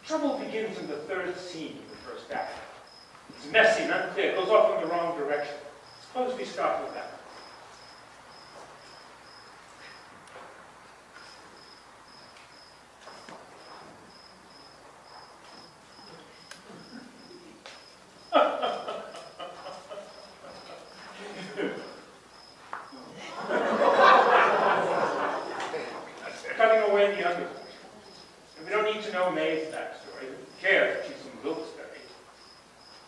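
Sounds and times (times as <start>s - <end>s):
cricket chirping: 0.0s - 33.0s.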